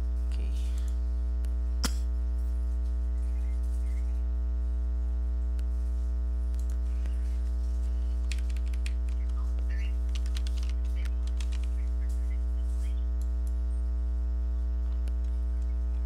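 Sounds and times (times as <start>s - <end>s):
electrical hum with buzzing: 0.0s - 16.0s
keyboard typing: 6.5s - 7.3s, 8.0s - 12.2s.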